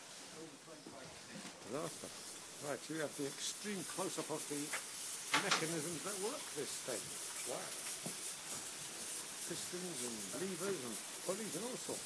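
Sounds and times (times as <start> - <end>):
steam hissing: 0.0 - 12.0.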